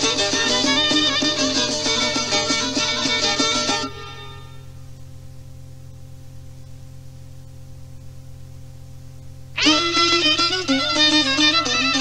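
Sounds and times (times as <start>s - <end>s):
fiddle-led folk song: 0.0s - 4.3s, 9.6s - 12.0s
faint low hum: 0.0s - 12.0s.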